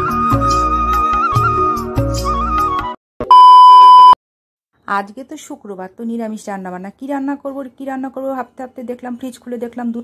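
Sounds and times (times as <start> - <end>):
high-pitched test tone beep: 3.2 - 4.2.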